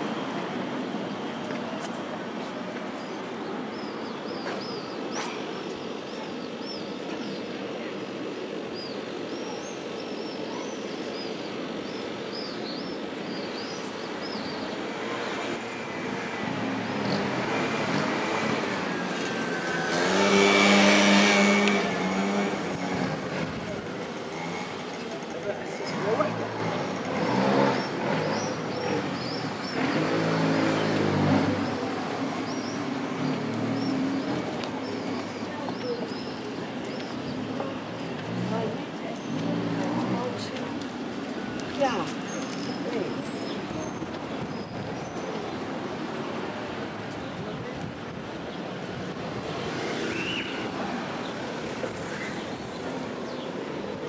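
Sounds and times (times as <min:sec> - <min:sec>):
small birds chirping: 0:02.9 - 0:15.6, 0:24.7 - 0:41.0
passers-by talking: 0:14.1 - 0:54.0.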